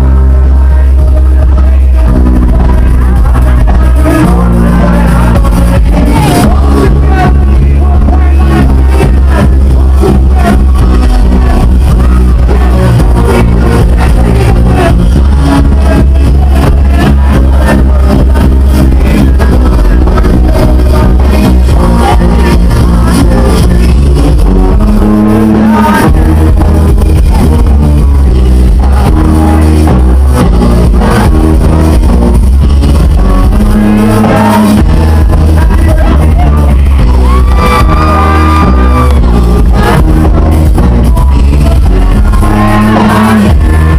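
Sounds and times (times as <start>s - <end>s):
loud dance music: 0.0s - 43.9s.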